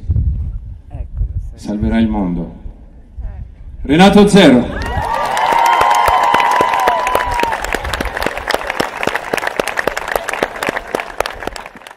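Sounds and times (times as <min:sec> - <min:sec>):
large crowd applauding: 0:04.7 - 0:11.9
voices cheering: 0:04.7 - 0:11.9.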